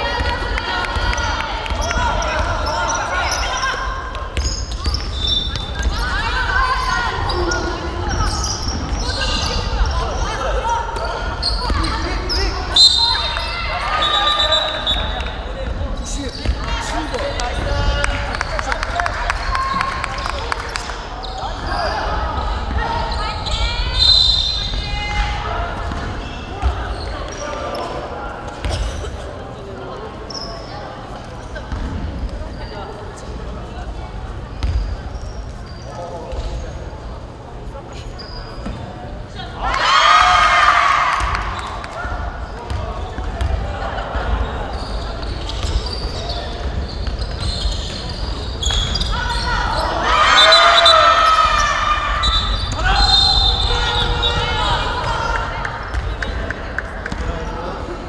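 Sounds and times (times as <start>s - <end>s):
loud shouting voices: 5.3s - 15.2s, 39.4s - 42.4s, 48.9s - 55.9s
basketball bouncing on gym floor: 25.8s - 27.5s, 34.6s - 35.0s, 42.6s - 43.7s, 55.9s - 56.3s.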